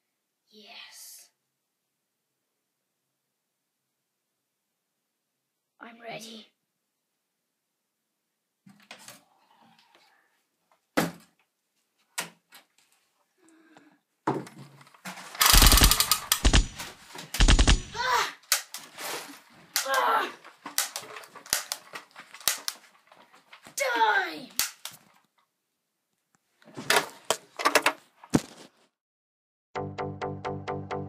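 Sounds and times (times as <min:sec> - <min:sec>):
thumps and bangs: 0:15.5 - 0:18.0
people yelling: 0:18.0 - 0:18.4, 0:19.8 - 0:20.4, 0:23.8 - 0:24.5.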